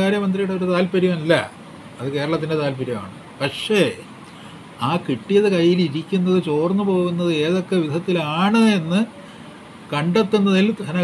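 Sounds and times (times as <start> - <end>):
man talking: 0.0 - 4.2, 4.8 - 9.2, 9.9 - 11.0
faint background noise: 0.0 - 11.0.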